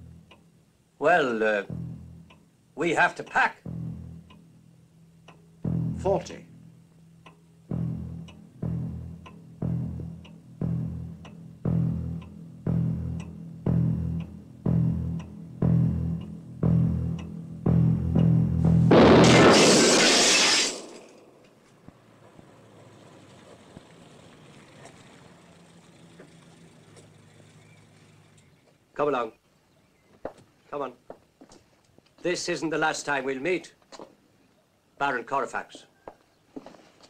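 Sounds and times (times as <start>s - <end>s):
light tick: 0.2s - 0.5s, 5.2s - 5.5s, 7.2s - 7.4s, 13.2s - 13.4s
low bass note pulse: 1.6s - 2.4s, 3.6s - 4.4s, 5.6s - 6.8s, 7.6s - 19.3s
loud crash: 18.8s - 21.4s.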